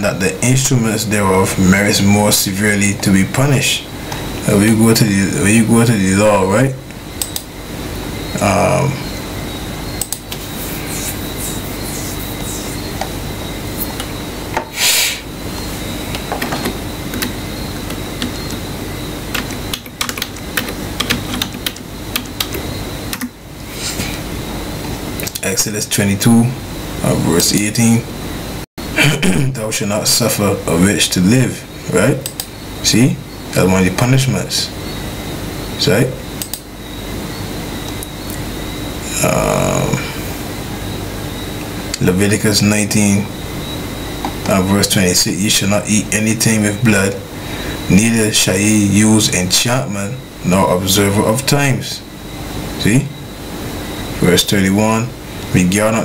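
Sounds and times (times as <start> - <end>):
low hum: 0.0 - 14.6
background hiss: 0.0 - 56.0
faint high whine: 0.0 - 56.0
faint clicks: 6.9 - 7.5, 32.2 - 32.5
soft rubbing or swishing: 10.4 - 13.0.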